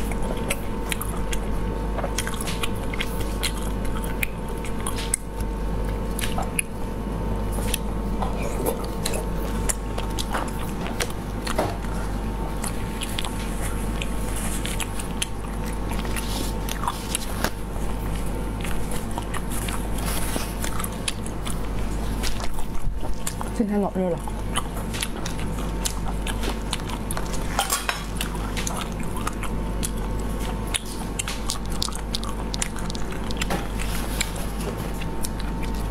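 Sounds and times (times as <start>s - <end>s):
chewing with mouth clicks: 0.0s - 35.9s
steady low hum: 0.0s - 35.9s.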